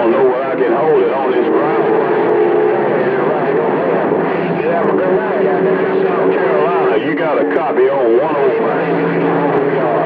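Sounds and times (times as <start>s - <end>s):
faint garbled radio voices: 0.0s - 10.0s
radio static: 0.0s - 10.0s
steady radio tone: 0.0s - 10.0s.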